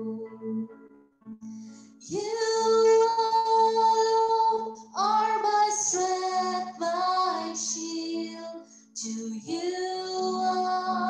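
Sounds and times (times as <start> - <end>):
woman singing worship song: 0.0 - 0.7, 2.0 - 11.0.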